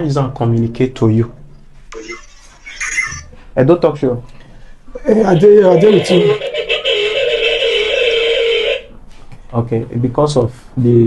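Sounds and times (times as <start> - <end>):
audio feedback howl: 5.0 - 9.0.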